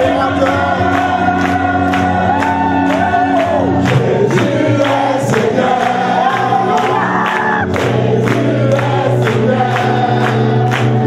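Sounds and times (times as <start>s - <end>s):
congregation singing gospel song: 0.0s - 11.0s.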